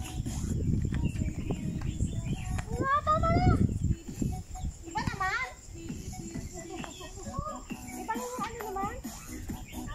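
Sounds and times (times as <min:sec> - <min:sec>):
women talking: 0:01.0 - 0:09.9.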